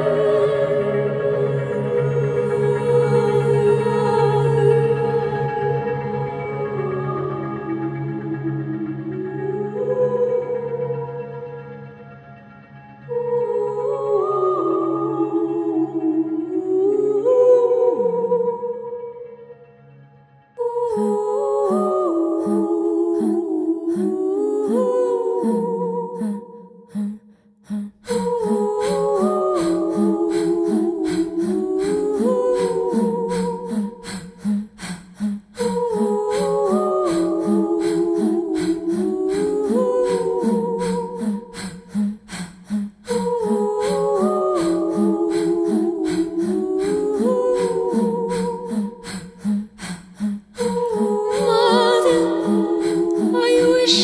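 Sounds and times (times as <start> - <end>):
voices humming in harmony: 0.0 - 11.4, 20.6 - 27.1, 27.7 - 54.0.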